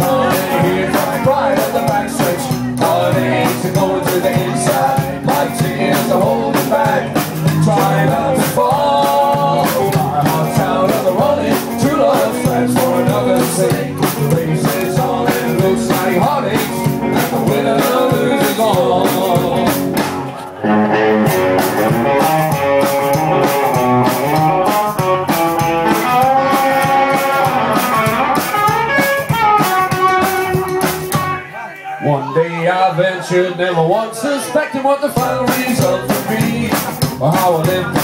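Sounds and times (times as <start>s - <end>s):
electric guitar lead: 0.0s - 31.4s
drum kit: 0.0s - 31.5s, 35.1s - 38.0s
upright double bass: 0.0s - 31.5s, 35.1s - 38.0s.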